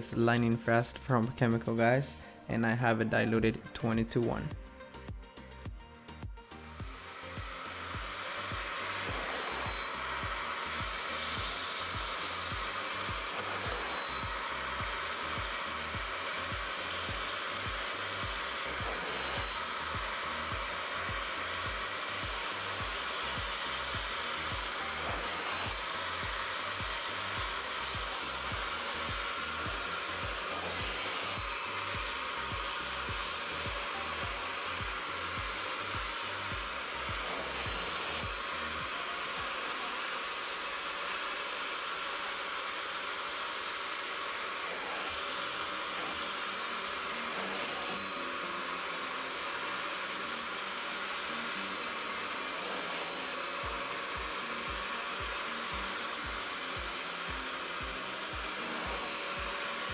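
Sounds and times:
carpet extractor whining: 0:06.5 - 0:59.9.

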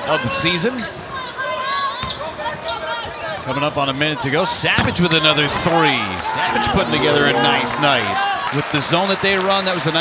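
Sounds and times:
background voices: 0:06.2 - 0:08.6.

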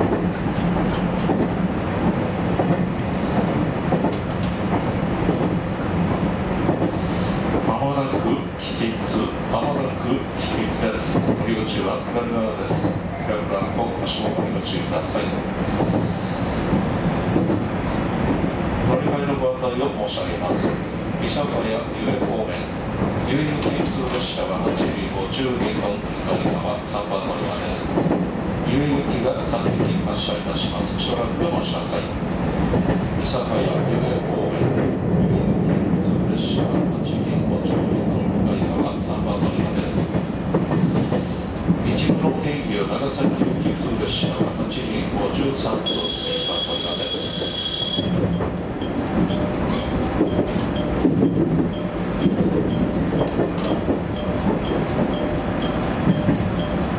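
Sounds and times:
railcar wheels rumbling on rail: 0:00.0 - 0:56.9.

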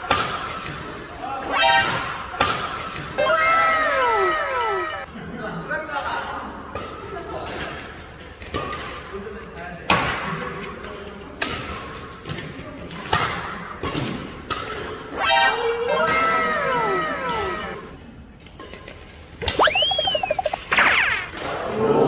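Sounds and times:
racket hitting shuttlecock: 0:00.0 - 0:00.9, 0:01.6 - 0:03.2, 0:11.4 - 0:15.5
cartoon falling tones effect: 0:01.5 - 0:02.0, 0:15.2 - 0:17.8, 0:19.5 - 0:21.3
whistle-like sound effect: 0:19.4 - 0:21.4.

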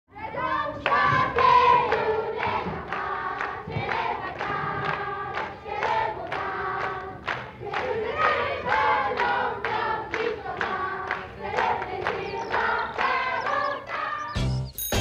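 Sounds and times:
children singing together: 0:00.1 - 0:14.5
hand claps: 0:00.8 - 0:14.1.

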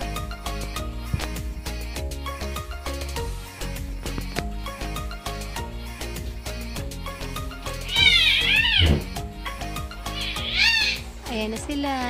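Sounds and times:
background music: 0:00.0 - 0:12.0
infant crying: 0:07.6 - 0:09.2, 0:10.0 - 0:11.1.

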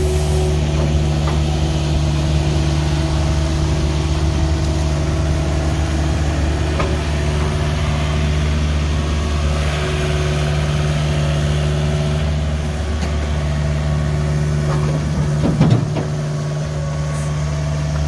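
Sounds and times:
diesel engine running: 0:00.0 - 0:18.0.

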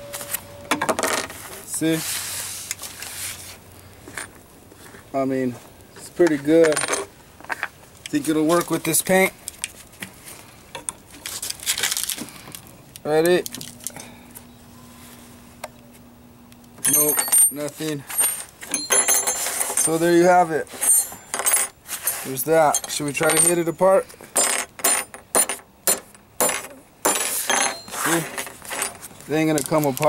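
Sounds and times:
steel pieces scraping and clicking: 0:16.8 - 0:30.0
gloves rustling: 0:19.3 - 0:24.3, 0:27.4 - 0:30.0.

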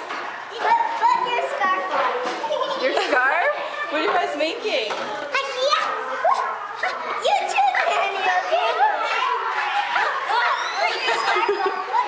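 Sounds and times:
young children chattering: 0:00.0 - 0:12.0.

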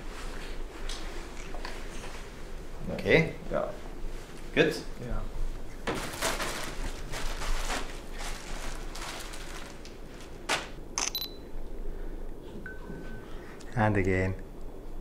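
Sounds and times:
camera shutter clicks: 0:11.0 - 0:11.4.

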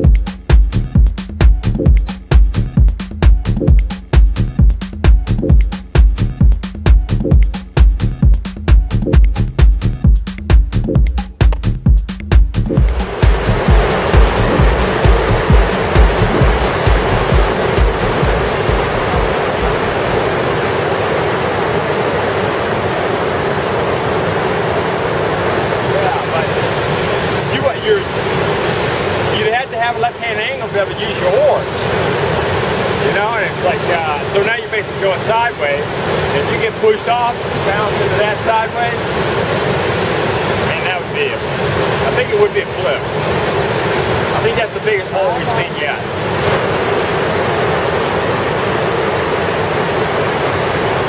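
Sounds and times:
music beat: 0:00.0 - 0:20.4
whitewater rapid rushing: 0:12.8 - 0:51.0
people's voices: 0:44.4 - 0:46.0.

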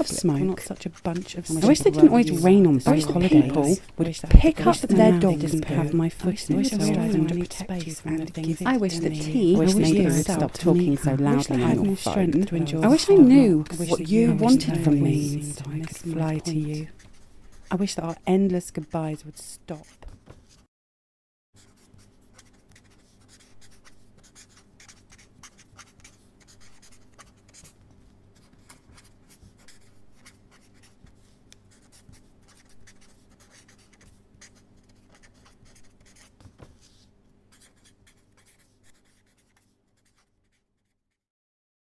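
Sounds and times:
low steady hum: 0:00.0 - 0:17.0
pen scratching on paper: 0:00.0 - 0:18.2, 0:19.8 - 0:20.6, 0:21.7 - 0:27.8, 0:28.4 - 0:41.0.

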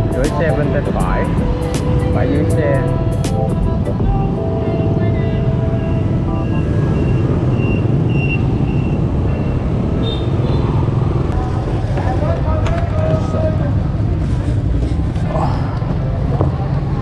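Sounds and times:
street traffic: 0:00.0 - 0:17.0.

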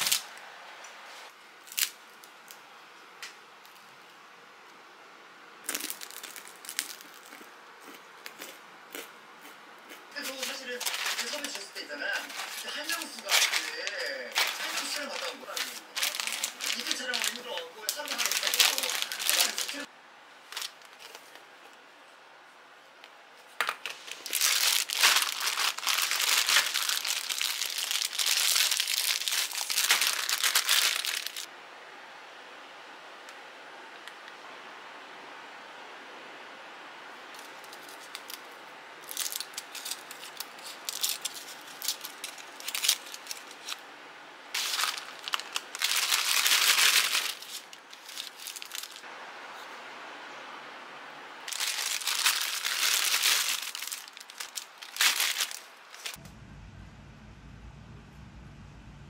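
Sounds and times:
plastic candy bags crinkling: 0:00.0 - 0:00.4, 0:05.6 - 0:08.6, 0:10.2 - 0:21.4, 0:23.6 - 0:31.5, 0:37.4 - 0:43.8, 0:44.6 - 0:49.1, 0:51.5 - 0:56.2.

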